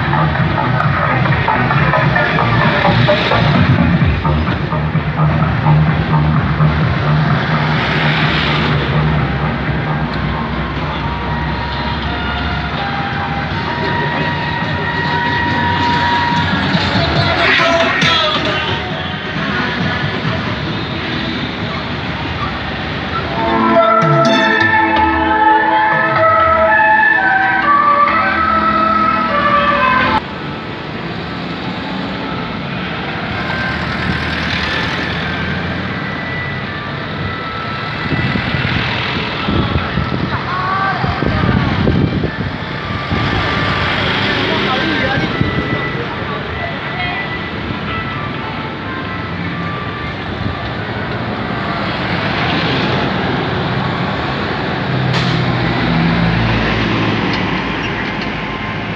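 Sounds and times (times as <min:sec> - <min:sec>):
loud music: 0:00.0 - 0:21.8, 0:22.8 - 0:30.2
truck engines passing: 0:00.0 - 0:58.9
voices: 0:13.7 - 0:26.6, 0:39.2 - 0:51.2
faint band music: 0:23.1 - 0:30.2.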